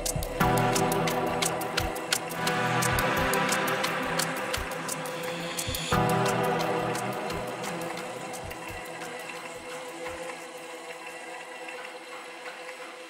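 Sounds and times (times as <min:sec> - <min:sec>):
hi-hat ticks: 0:00.0 - 0:10.4
sustained synth chords: 0:00.0 - 0:13.0.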